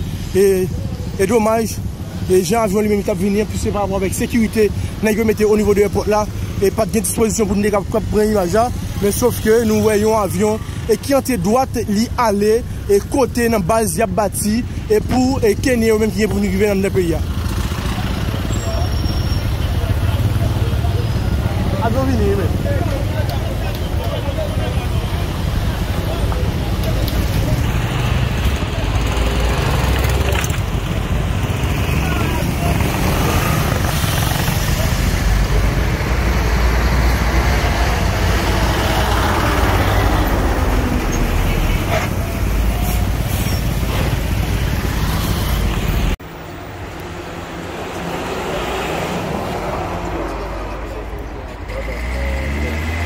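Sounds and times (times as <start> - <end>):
street noise: 0.0 - 53.0
vehicle engines rumbling: 0.0 - 53.0.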